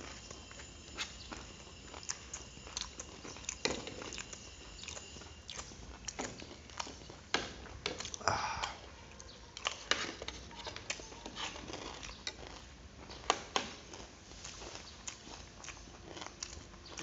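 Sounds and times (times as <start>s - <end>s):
chewing: 0.0s - 17.0s.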